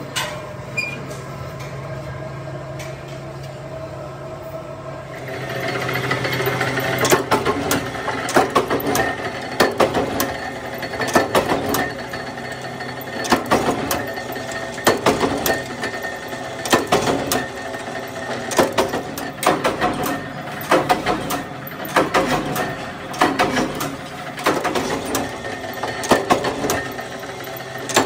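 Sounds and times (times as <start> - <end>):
power press clattering: 5.4 - 28.0.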